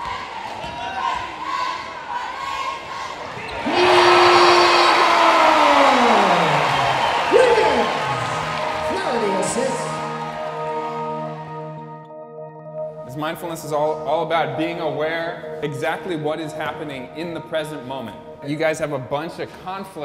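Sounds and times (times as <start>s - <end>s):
gym crowd noise: 0.0s - 8.9s
droning music chord: 7.4s - 19.4s.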